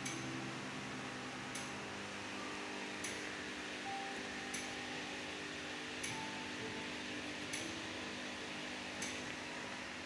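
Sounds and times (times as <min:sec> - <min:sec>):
ventilation fan humming: 0:00.0 - 0:10.0.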